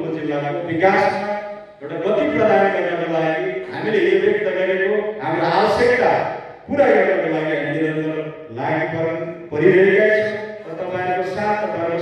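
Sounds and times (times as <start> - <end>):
man chanting through a microphone: 0.0 - 12.0.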